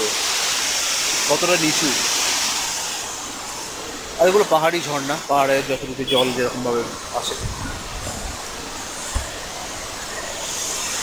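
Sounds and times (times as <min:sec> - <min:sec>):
rushing hiss: 0:00.0 - 0:11.0.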